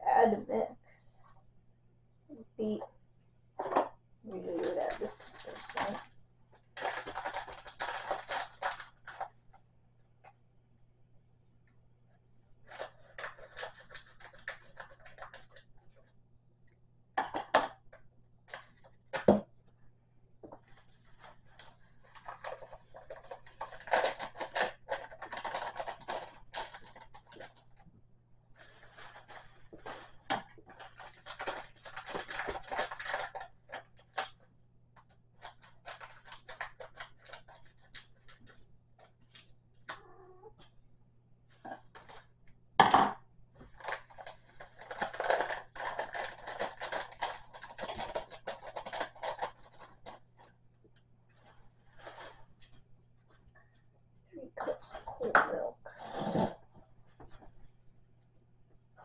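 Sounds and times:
paper packet crinkling: 4.4s - 9.4s, 20.6s - 27.7s, 28.6s - 34.4s, 35.4s - 38.4s, 43.8s - 50.5s.

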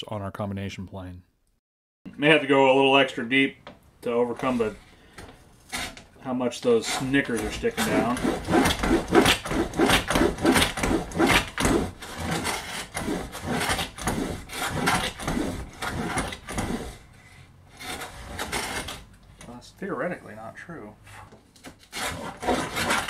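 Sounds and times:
hand plane cutting wood: 5.7s - 19.1s, 21.6s - 23.0s.

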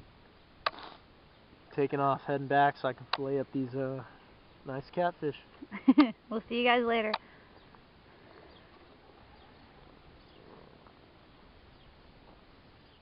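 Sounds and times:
outdoor background noise: 0.0s - 13.0s
man laughing: 5.6s - 6.2s.

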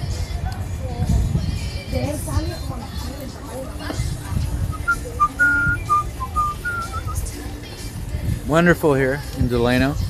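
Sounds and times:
person whistling a tune: 4.7s - 7.3s.

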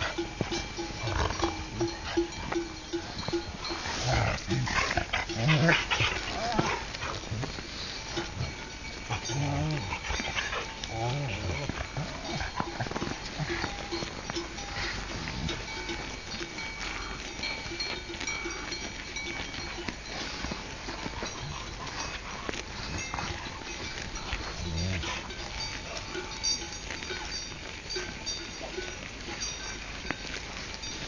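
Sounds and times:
small clinks and knocks: 0.0s - 31.0s.

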